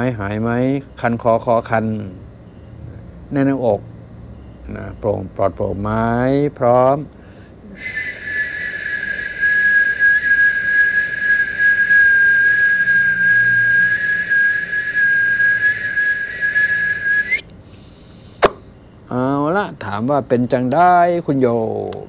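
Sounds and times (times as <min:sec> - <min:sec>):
long whistled note: 0:07.8 - 0:17.5.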